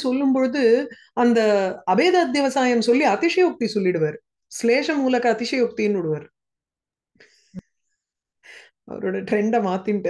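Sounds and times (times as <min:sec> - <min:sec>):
woman speaking: 0:00.0 - 0:06.3, 0:08.9 - 0:10.0.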